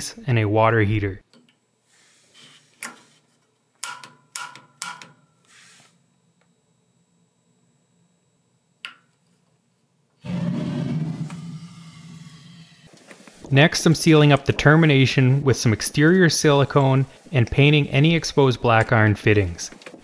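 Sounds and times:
gas burner rushing with hum: 0:10.2 - 0:19.5.

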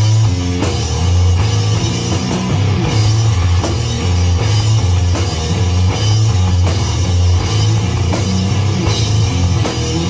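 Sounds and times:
drum kit: 0:00.0 - 0:10.0
slow low electric guitar riff: 0:00.0 - 0:10.0.

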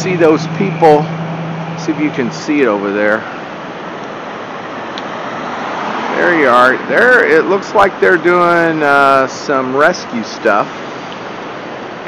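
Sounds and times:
choppy river water rushing: 0:00.0 - 0:12.0.

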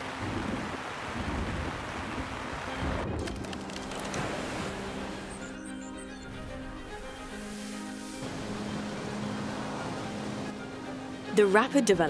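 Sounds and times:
rough sea water rushing: 0:00.0 - 0:11.8.

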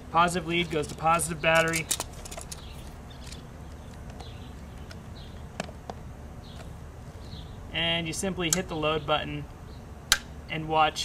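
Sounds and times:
outdoor background noise: 0:00.0 - 0:11.0
clamp leads clicking: 0:00.7 - 0:05.0.

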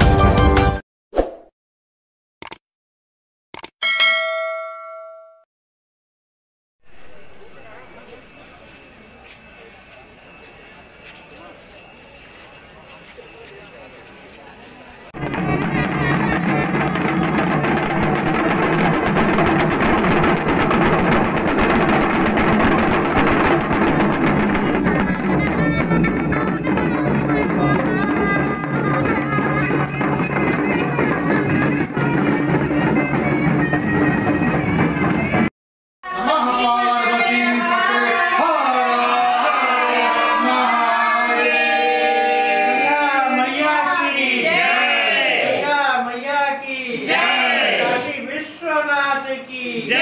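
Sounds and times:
quick clicks: 0:02.4 - 0:02.6, 0:03.5 - 0:03.8
bright bell ding: 0:03.8 - 0:05.5, 0:21.8 - 0:35.4
hand drums beaten in fast rhythm: 0:15.2 - 0:35.5.

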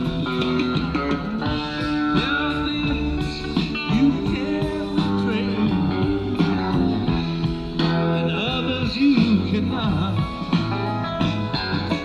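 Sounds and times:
bass guitar: 0:00.0 - 0:12.0
drums: 0:00.0 - 0:12.0
electric guitar lead: 0:00.0 - 0:12.0.

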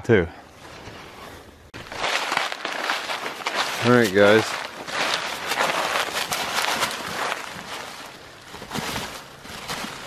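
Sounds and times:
dry leaves rustling and crackling: 0:01.8 - 0:10.0.

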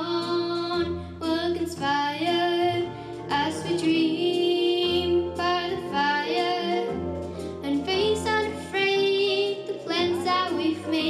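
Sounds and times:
girl singing into microphone: 0:00.0 - 0:11.0
instrumental accompaniment: 0:00.0 - 0:11.0.

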